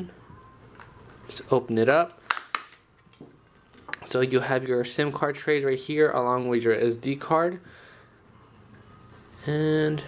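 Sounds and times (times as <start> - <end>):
plastic phone cover clicks: 2.2 - 2.8.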